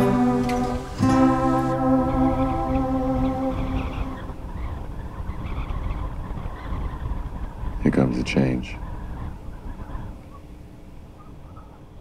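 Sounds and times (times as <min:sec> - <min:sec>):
background music chord: 0:00.0 - 0:04.5
low rumbling noise: 0:00.0 - 0:05.3.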